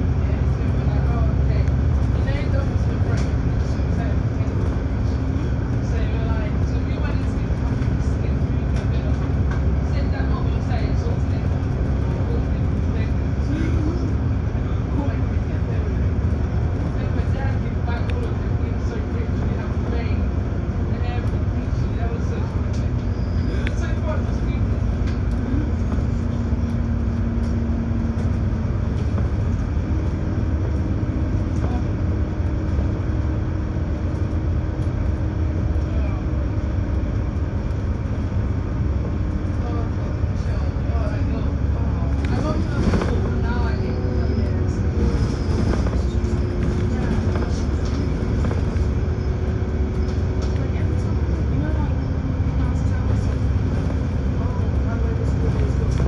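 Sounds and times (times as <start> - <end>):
bus engine and road rumble: 0.0 - 56.0.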